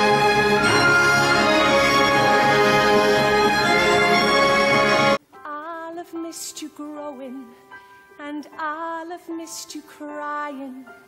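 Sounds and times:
orchestral strings playing chords: 0.0 - 5.2.

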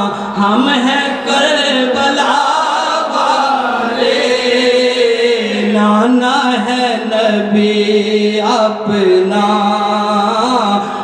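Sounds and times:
man chanting through a microphone: 0.0 - 11.0.

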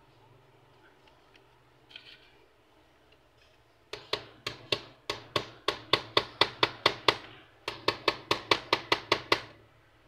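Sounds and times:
tool tapping hard plastic: 3.9 - 9.6.

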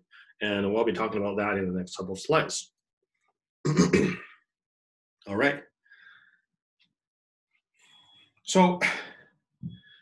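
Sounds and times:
man clearing his throat: 3.7 - 4.4.

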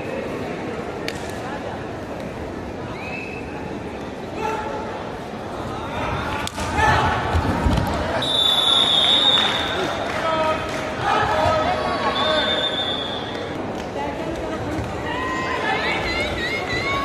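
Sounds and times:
shrill whistle tone: 8.2 - 9.6, 12.3 - 13.3.

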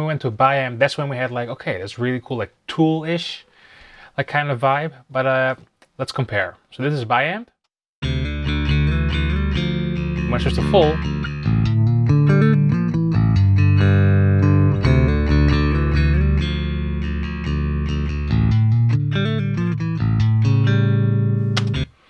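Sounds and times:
bass guitar riff: 8.0 - 22.0.

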